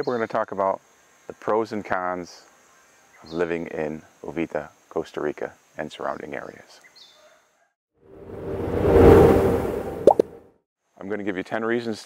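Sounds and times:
short rising pop: 8.2 - 10.4
whooshing transition noise: 8.2 - 10.4.

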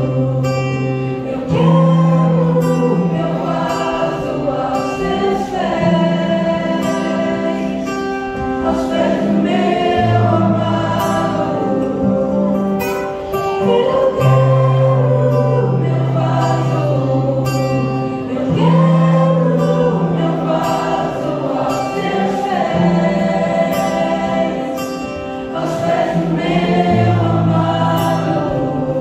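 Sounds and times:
acoustic guitar: 0.0 - 29.0
voices singing worship song: 0.0 - 29.0.

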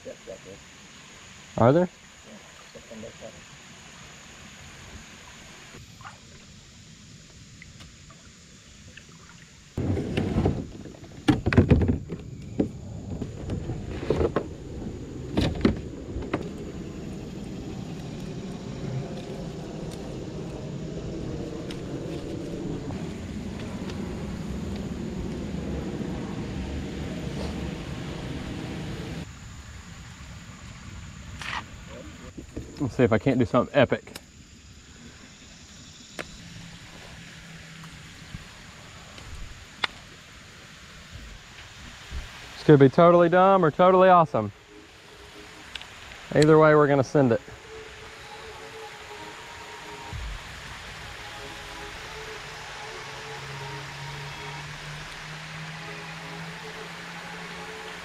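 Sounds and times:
rustling and scraping: 13.1 - 14.5.

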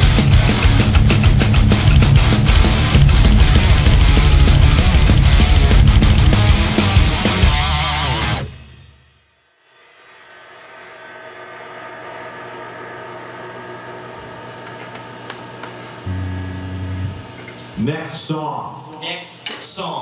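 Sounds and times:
heavy rock band playing: 0.0 - 9.0
amplifier hum: 11.5 - 18.7
low tone: 16.0 - 17.3.

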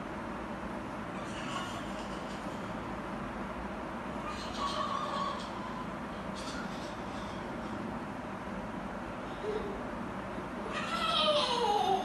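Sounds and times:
toddler crying: 10.6 - 12.0.

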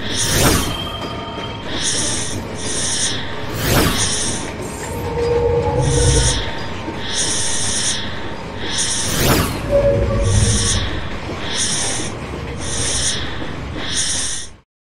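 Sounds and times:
whoosh sweep: 4.5 - 7.3, 9.1 - 11.7.

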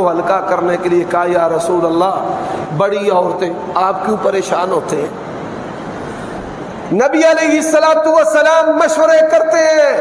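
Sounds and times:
man speaking: 0.0 - 5.2, 6.9 - 10.0
steady background noise: 0.0 - 10.0.

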